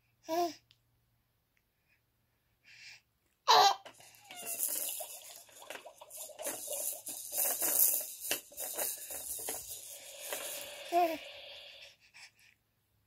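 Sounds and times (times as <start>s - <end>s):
baby laughing and squealing: 3.5s - 5.2s
rustling and handling noise: 3.8s - 10.9s.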